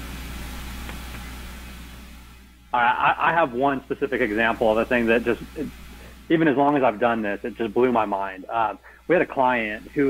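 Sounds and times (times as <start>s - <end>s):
faint hiss: 0.0s - 10.0s
low hum: 0.0s - 10.0s.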